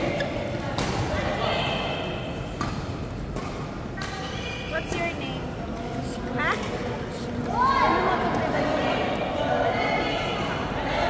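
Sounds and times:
players' voices in indoor hall: 0.0 - 11.0.

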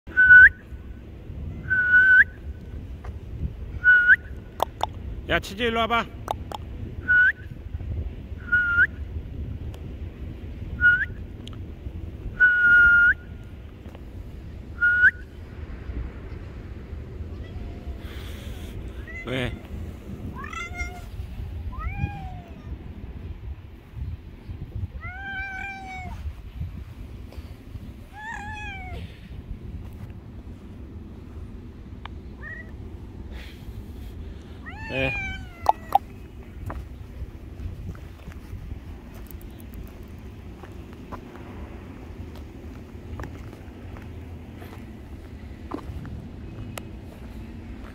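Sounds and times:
cat meowing: 17.3 - 18.1, 19.0 - 19.7, 20.3 - 21.1, 21.7 - 22.8, 25.0 - 26.2, 28.1 - 29.0, 34.6 - 36.1
cat chirp: 20.4 - 21.1, 21.7 - 22.8, 25.0 - 26.2, 28.1 - 29.0, 34.6 - 36.1.

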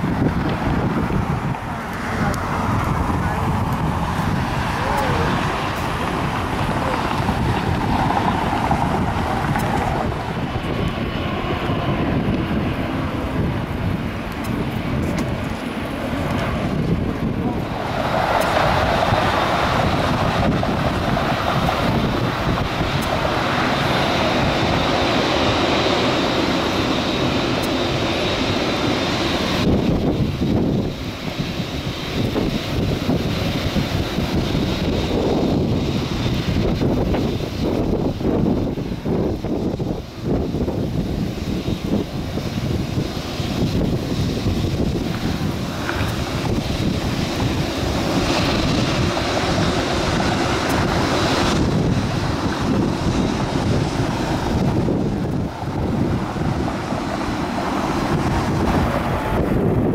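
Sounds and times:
distant jet engines rushing: 0.0 - 59.9
jet engine high whine: 0.0 - 59.9
wind on microphone: 0.0 - 59.9.

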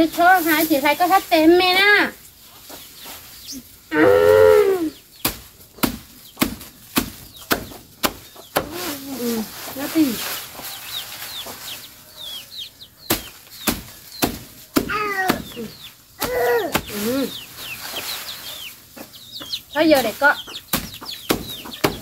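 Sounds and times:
machete chopping grass: 5.2 - 9.0, 13.0 - 17.2, 20.7 - 22.0.

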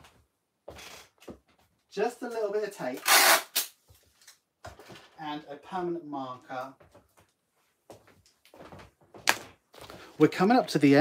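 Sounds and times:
adhesive tape ripping: 3.0 - 3.8.

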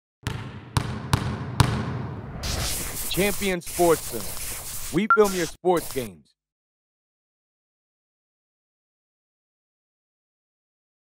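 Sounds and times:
basketball bouncing on hard floor: 0.2 - 2.2.

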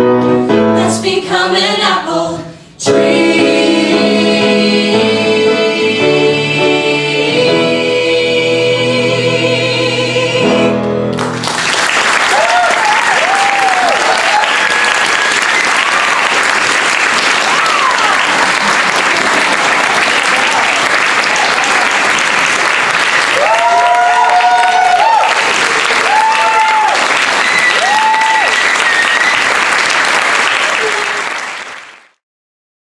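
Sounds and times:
group singing a held chord: 0.8 - 10.8
audience applauding: 11.2 - 32.2
whoops and cheers: 12.2 - 16.4, 17.4 - 18.5, 23.3 - 29.6.

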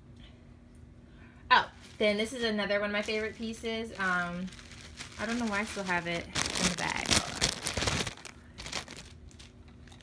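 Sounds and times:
plastic bag crinkling: 1.8 - 10.0.

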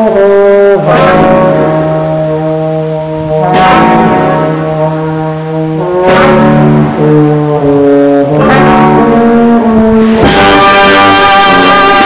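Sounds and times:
wind band playing a march: 0.0 - 12.0.

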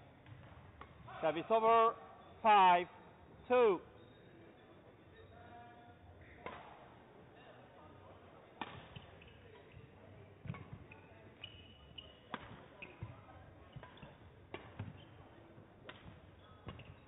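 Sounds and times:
shoe squeaks on court floor: 3.4 - 5.8, 8.8 - 15.5, 16.2 - 17.0
racket hitting shuttlecock: 6.4 - 6.8, 8.6 - 9.2, 12.3 - 13.1, 13.8 - 15.0, 15.8 - 16.9.

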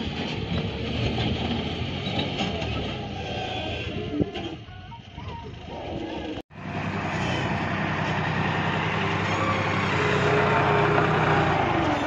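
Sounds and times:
tractor diesel engines running: 0.0 - 12.0.

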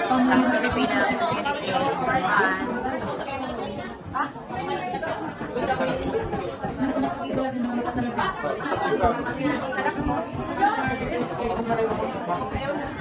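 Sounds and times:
crowd of people chatting: 0.0 - 13.0.

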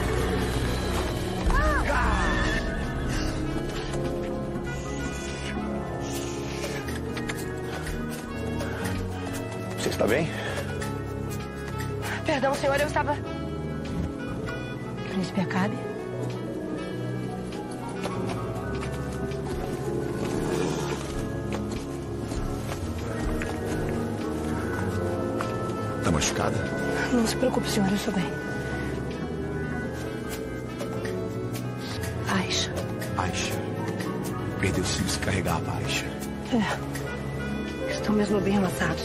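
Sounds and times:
background music: 0.0 - 39.0
horse vocalising: 20.1 - 21.3.

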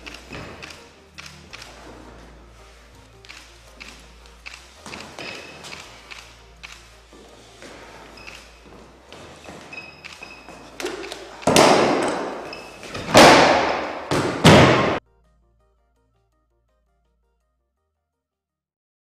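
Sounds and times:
footwork taps and scuffs: 0.0 - 0.8, 3.8 - 6.1, 6.7 - 15.0
bodies thudding on wooden floor: 11.4 - 15.0.

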